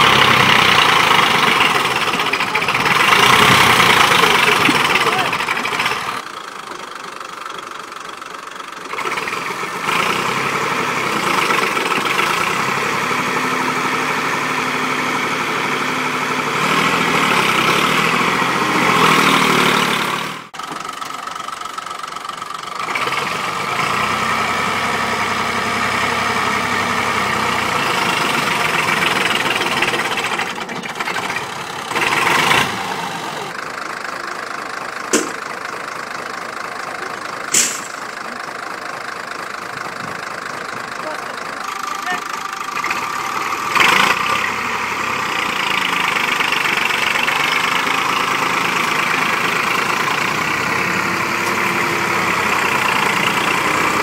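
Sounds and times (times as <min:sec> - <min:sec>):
tractor diesel engine under load: 0:00.0 - 0:54.0
short sharp clicks: 0:37.5 - 0:38.1.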